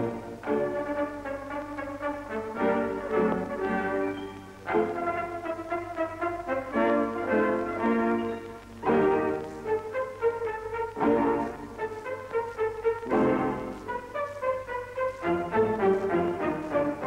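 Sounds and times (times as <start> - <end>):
brass instruments melody: 0.0 - 17.0.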